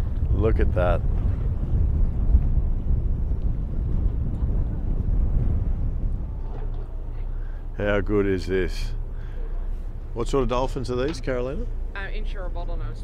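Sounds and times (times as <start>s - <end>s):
water under boat: 0.0s - 7.7s
boat engine: 0.0s - 13.0s
wind buffeting microphone: 0.0s - 13.0s.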